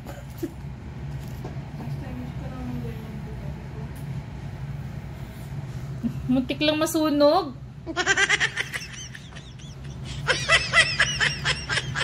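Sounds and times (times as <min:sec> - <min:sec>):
steady low motor hum: 0:00.0 - 0:12.0.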